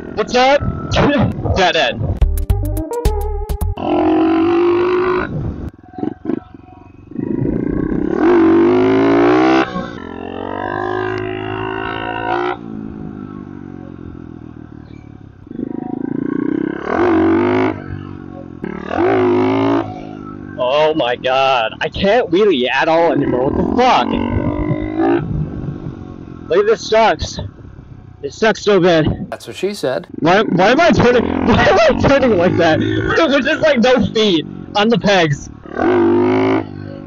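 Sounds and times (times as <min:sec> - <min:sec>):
motorbike engine revving: 0:03.5 - 0:14.7, 0:15.5 - 0:20.4, 0:30.1 - 0:33.5, 0:35.5 - 0:37.0.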